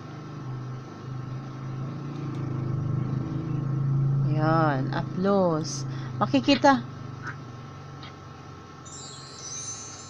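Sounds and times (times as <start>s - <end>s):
low engine hum: 0.0s - 8.3s.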